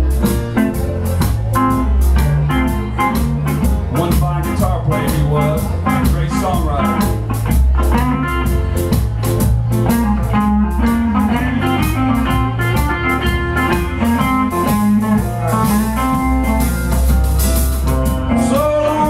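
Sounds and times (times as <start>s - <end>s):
bass guitar: 0.0s - 19.0s
drum kit: 0.0s - 19.0s
electric guitar lead lines: 0.0s - 19.0s.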